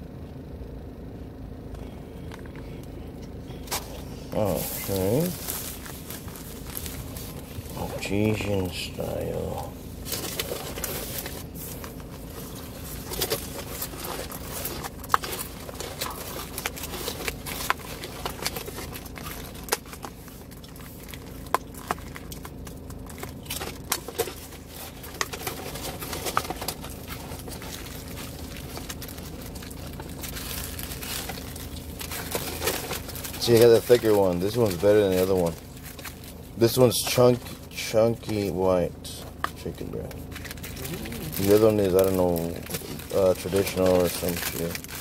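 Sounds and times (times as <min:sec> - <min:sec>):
plastic packaging crinkling: 0:03.6 - 0:45.0.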